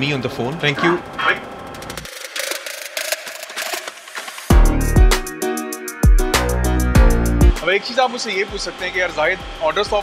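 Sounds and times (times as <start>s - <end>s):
mechanical clicking and ticking: 0.4s - 4.5s.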